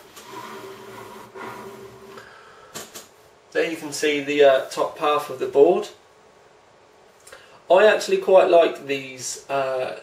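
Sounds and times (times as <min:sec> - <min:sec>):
brief rub: 0:00.1 - 0:02.2.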